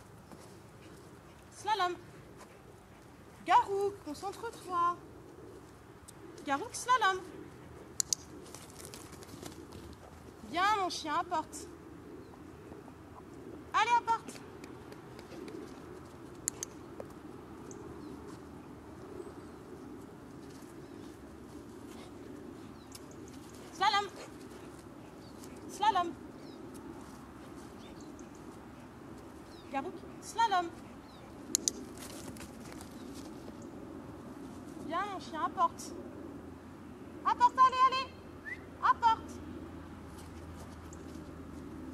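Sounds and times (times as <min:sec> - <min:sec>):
faint background noise: 0:00.0 - 0:41.9
low outdoor background: 0:00.0 - 0:41.9
woman calling to dog: 0:13.7 - 0:14.3, 0:23.7 - 0:24.2, 0:25.7 - 0:26.2, 0:29.7 - 0:30.8, 0:37.2 - 0:38.2, 0:38.8 - 0:39.4.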